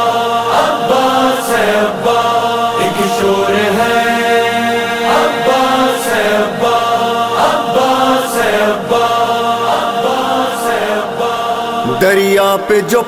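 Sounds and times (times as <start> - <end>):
men chanting droning chorus: 0.0 - 13.0
lead voice reciting: 2.8 - 6.2, 11.8 - 13.0.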